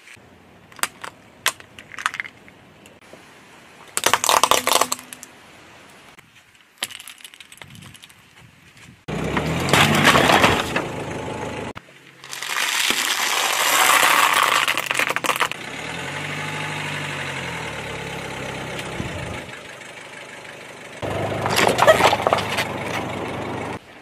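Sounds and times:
soda cans crunching and bursting: 0:04.0 - 0:05.2, 0:12.2 - 0:15.6
cardboard boxes crunching under tyre: 0:12.2 - 0:15.6, 0:21.4 - 0:23.0.

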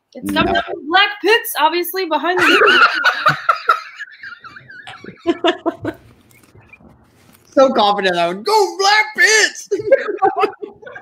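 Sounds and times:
people laughing: 0:00.3 - 0:00.8, 0:02.4 - 0:06.8, 0:09.6 - 0:11.0.

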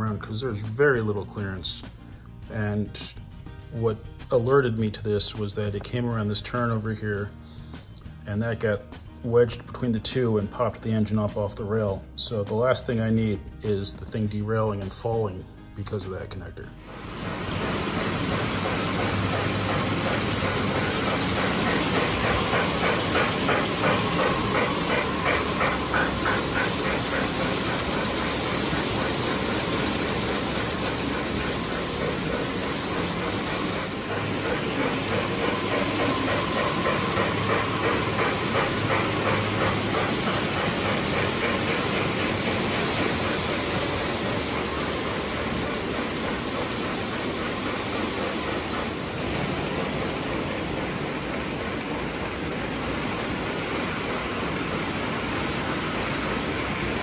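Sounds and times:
model steam locomotive chuffing: 0:00.0 - 0:57.0
hum of wheels and motor: 0:16.8 - 0:57.0.

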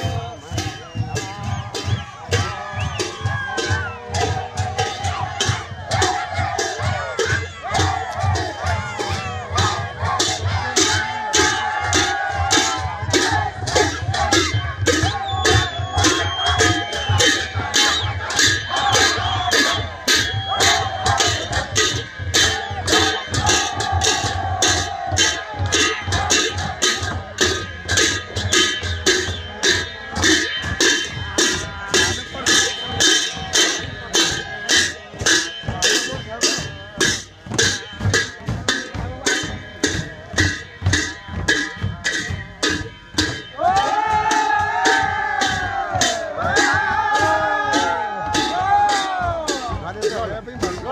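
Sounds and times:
crowd calling and singing: 0:00.0 - 0:50.9
drum beating steadily: 0:00.0 - 0:50.9.

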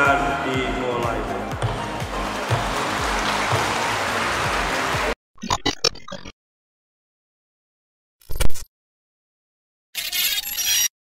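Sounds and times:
background music with steady beat: 0:00.0 - 0:05.2
audience applauding: 0:01.6 - 0:05.2.

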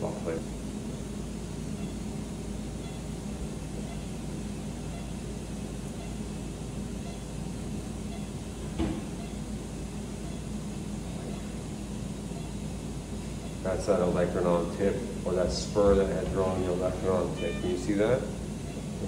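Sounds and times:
machine hum and ventilation: 0:00.0 - 0:19.0.

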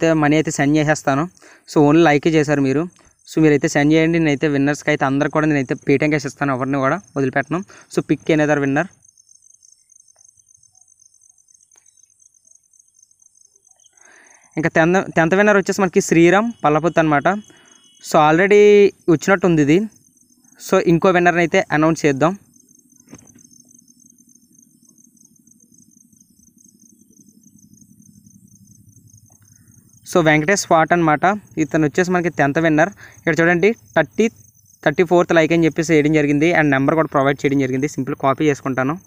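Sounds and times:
faint high-pitched tone: 0:08.5 - 0:32.8.

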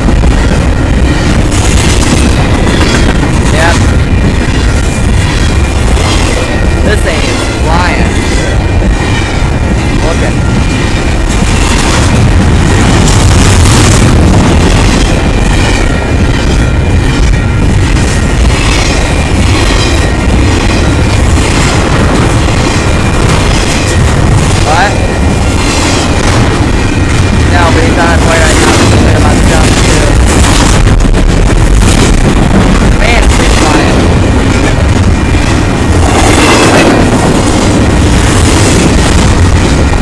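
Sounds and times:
train cars clattering: 0:00.0 - 0:40.0
train wheels rumbling on rail: 0:00.0 - 0:40.0.

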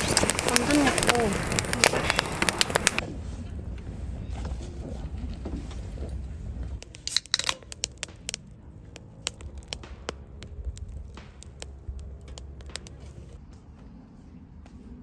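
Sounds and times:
fizz popping: 0:00.0 - 0:03.0, 0:06.8 - 0:13.3
loud crackling rustling: 0:00.0 - 0:13.4.

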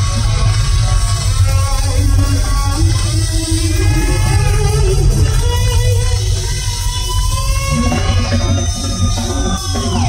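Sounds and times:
bass and drums: 0:00.0 - 0:10.0
electric guitar solo: 0:00.0 - 0:10.0.

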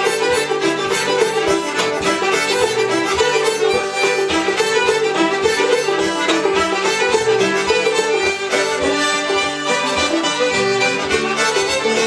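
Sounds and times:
fiddles bowing melody: 0:00.0 - 0:12.0
harmonica: 0:00.0 - 0:12.0
strummed banjo and guitar: 0:00.0 - 0:12.0.

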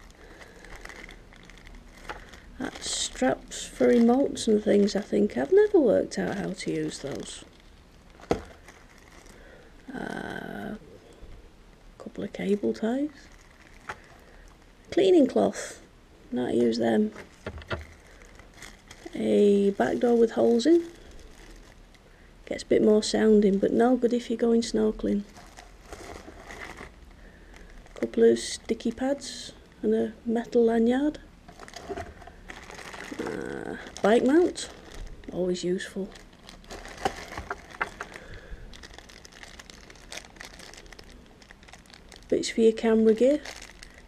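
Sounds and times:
plastic bag crinkling: 0:00.0 - 0:10.3, 0:12.2 - 0:15.4, 0:16.4 - 0:23.1, 0:25.0 - 0:29.4, 0:31.4 - 0:44.0.

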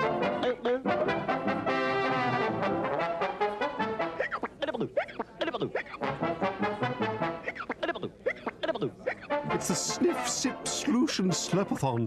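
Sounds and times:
jaunty brass music: 0:00.0 - 0:04.5, 0:05.9 - 0:07.8, 0:09.2 - 0:12.0.

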